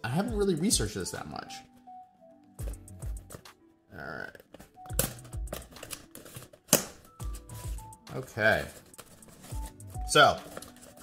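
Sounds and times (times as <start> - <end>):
cardboard flap snapping: 4.6 - 7.2.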